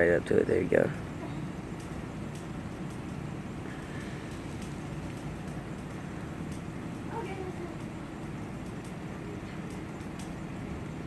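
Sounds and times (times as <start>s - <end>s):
low background rumble: 0.0s - 11.0s
faint clicks: 1.2s - 10.4s.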